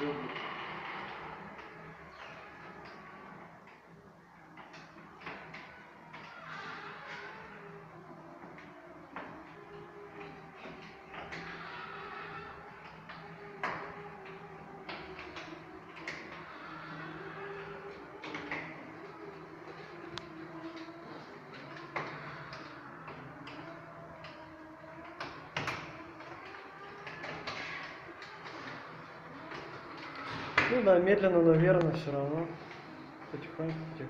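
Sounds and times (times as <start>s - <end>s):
electric motor hum: 0.0s - 34.0s.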